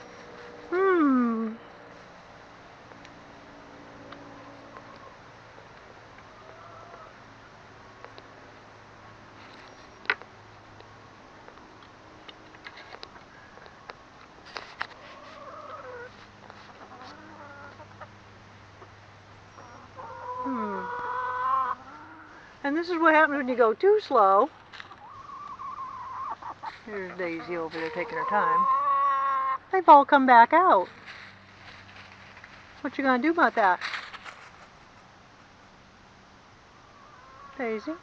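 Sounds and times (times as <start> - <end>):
hens clucking: 4.1 - 5.4, 6.1 - 7.5, 12.4 - 23.6, 24.2 - 29.7, 36.7 - 38.0.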